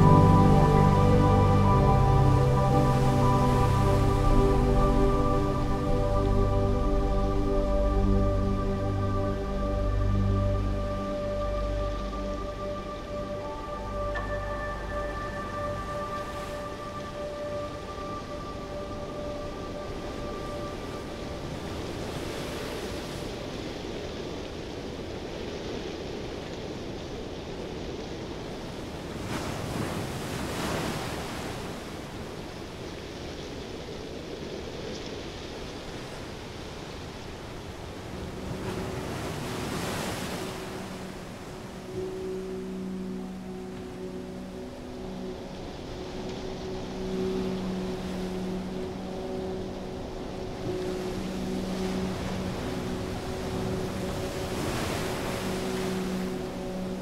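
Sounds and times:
low humming tone: 0:00.0 - 0:22.6, 0:37.7 - 0:57.0
rush of wind: 0:00.0 - 0:57.0.

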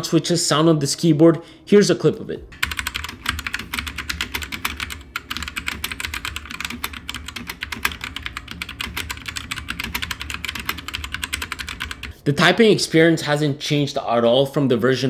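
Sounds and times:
fast mechanical keyboard typing: 0:02.6 - 0:12.2.

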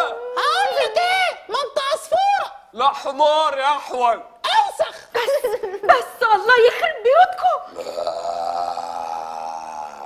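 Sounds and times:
long burp: 0:07.7 - 0:10.0.

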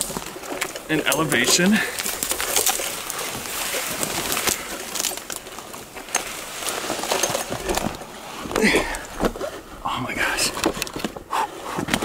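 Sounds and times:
twigs crackling against clothing: 0:00.0 - 0:12.0.

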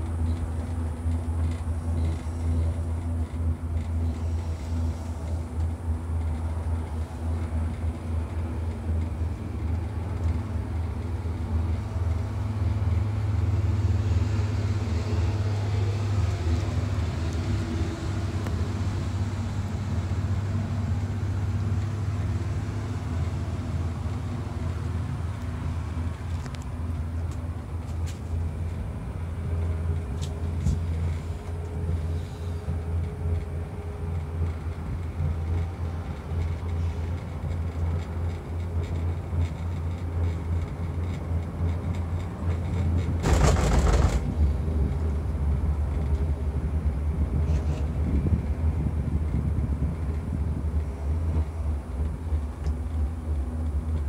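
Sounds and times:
cable car low rumble: 0:00.0 - 0:54.0.

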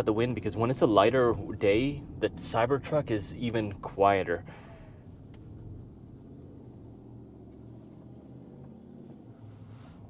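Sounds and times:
road and tyre noise hum: 0:00.0 - 0:10.0.

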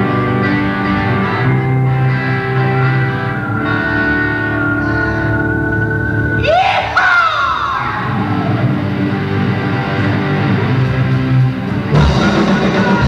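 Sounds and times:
electric guitar pitch glides: 0:00.0 - 0:13.0
rock band playing: 0:00.0 - 0:13.0.

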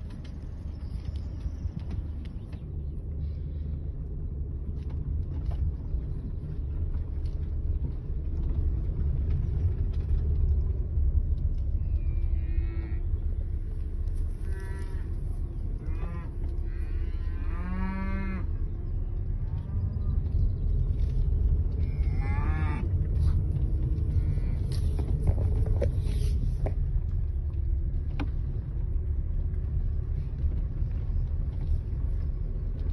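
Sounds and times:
car engine rumble: 0:00.0 - 0:32.9
cattle mooing: 0:14.4 - 0:15.1, 0:15.8 - 0:18.5, 0:22.0 - 0:22.9.

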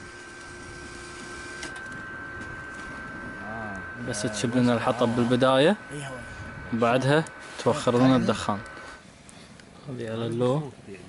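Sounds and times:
electric blower fan whirring: 0:00.0 - 0:09.8.

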